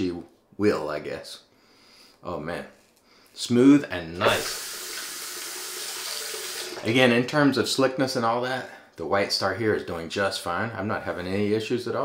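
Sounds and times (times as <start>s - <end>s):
water running from tap: 4.3s - 7.1s.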